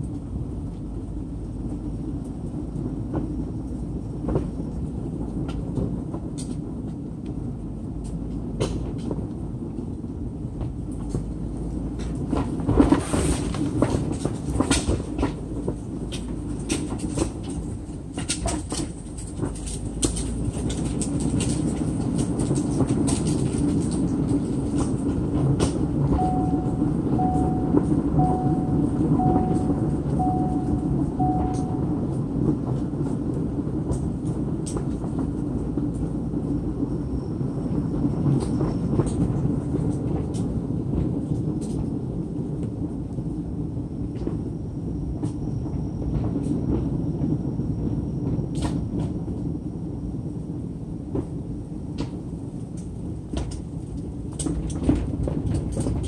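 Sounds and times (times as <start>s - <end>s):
car engine and tyres rumbling: 0.0s - 56.0s
dashboard warning chime beeping: 26.1s - 32.2s.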